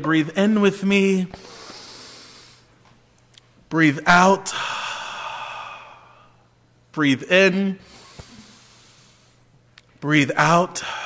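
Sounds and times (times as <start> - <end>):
deep breath out: 4.5 - 6.4, 7.8 - 9.5, 10.8 - 11.0.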